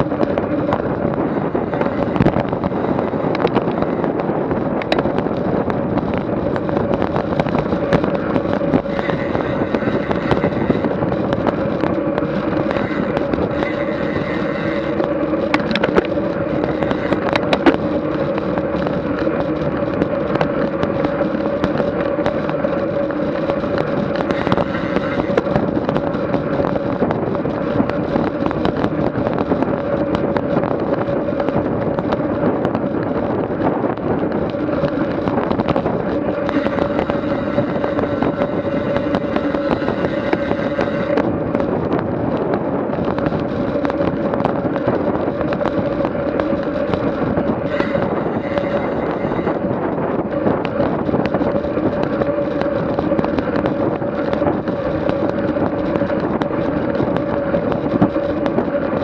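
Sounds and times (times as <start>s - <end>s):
bicycle tyre road noise: 0.0s - 59.0s
steady hum: 0.0s - 59.0s
wind buffeting microphone: 0.0s - 59.0s.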